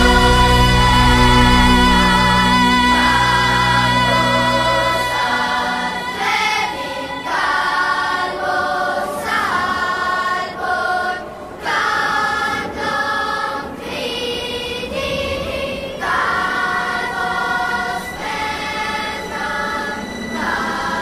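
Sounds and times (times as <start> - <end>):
low accompaniment: 0.0 - 7.6
choir singing held chords: 0.0 - 21.0.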